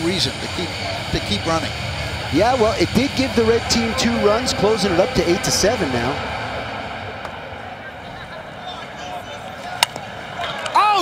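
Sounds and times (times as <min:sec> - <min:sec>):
stadium crowd: 0:00.0 - 0:11.0.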